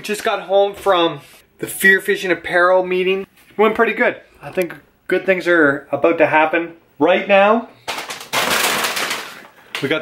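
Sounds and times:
man speaking: 0.0s - 7.7s
plastic bag crinkling: 7.9s - 10.0s.

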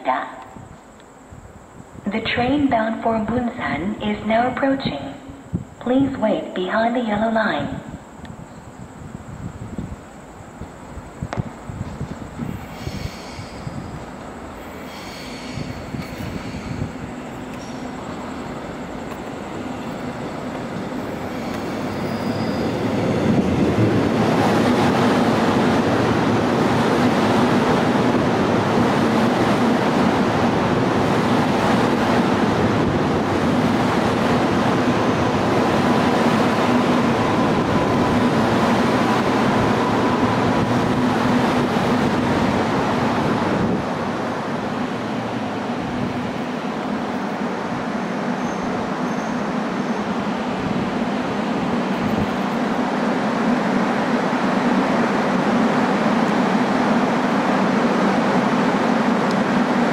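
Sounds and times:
electric train passing: 8.0s - 59.9s.

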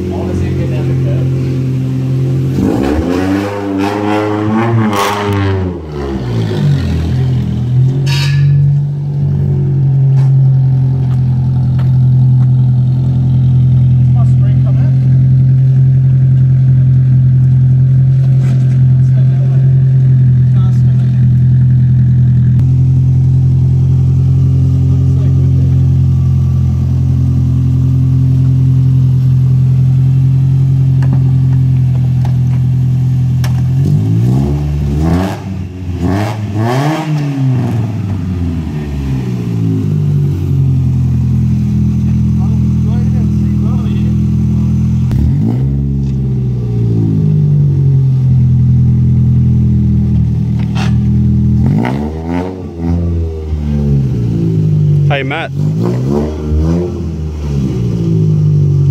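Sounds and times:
car engine idling and revving: 0.0s - 58.9s.

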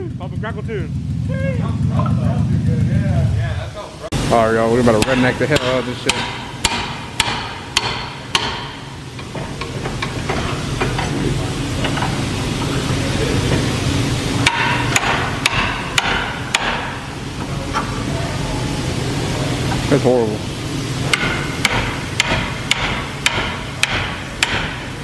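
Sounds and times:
steady low hum: 0.0s - 25.0s
pry bar knocking on metal: 5.0s - 10.4s, 21.1s - 24.8s.

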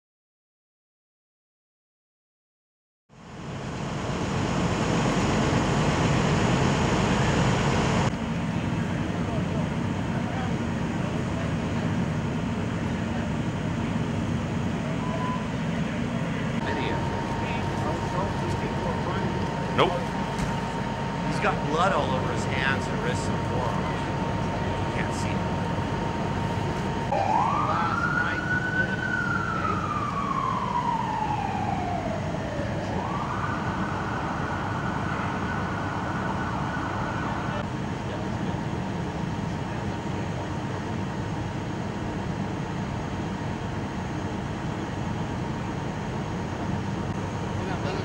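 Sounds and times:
low rumble of idling engines: 3.2s - 48.0s
emergency siren wailing and yelping: 14.8s - 15.6s, 27.1s - 37.6s.

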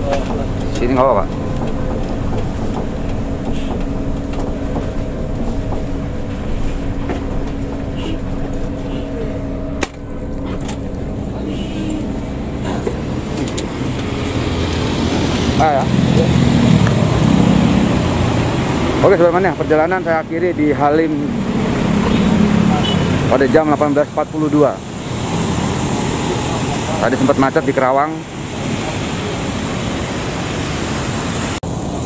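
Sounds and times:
coach engine drone: 0.0s - 32.0s
tyre noise on wet road: 0.0s - 32.0s.

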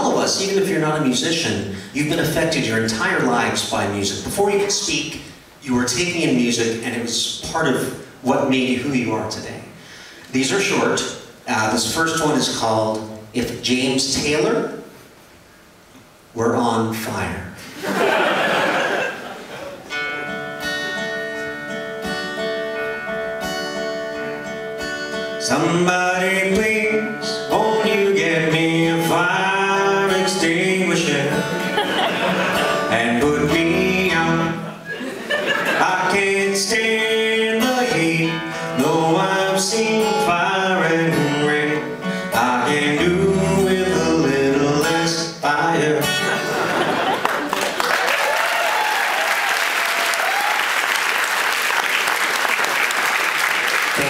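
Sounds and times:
acoustic guitar: 0.0s - 16.0s, 17.0s - 47.8s
man singing: 25.4s - 31.7s, 32.8s - 34.8s, 35.6s - 46.4s
audience applauding: 47.1s - 54.0s.

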